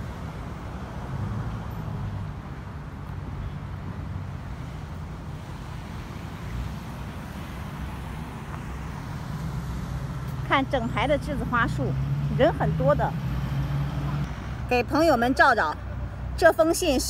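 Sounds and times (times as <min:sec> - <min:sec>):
road traffic hum: 0:00.0 - 0:17.0.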